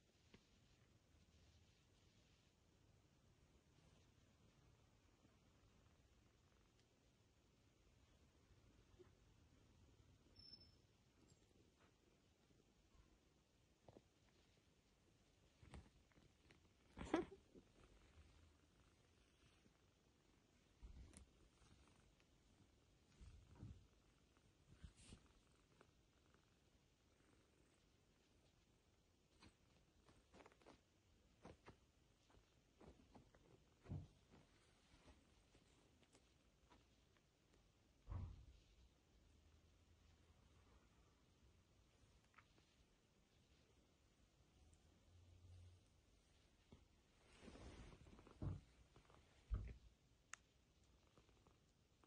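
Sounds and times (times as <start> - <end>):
faint handling noises: 11.1 - 44.6, 46.0 - 52.0
cloth rustle: 46.6 - 49.6
soft low thump: 48.1 - 49.8.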